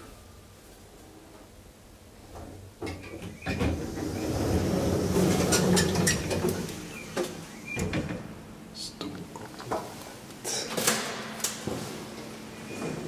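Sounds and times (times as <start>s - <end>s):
elevator doors sliding open: 2.5s - 8.2s.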